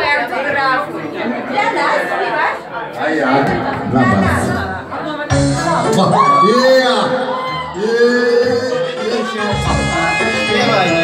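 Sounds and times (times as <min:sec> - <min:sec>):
overlapping crowd chatter: 0:00.0 - 0:11.0.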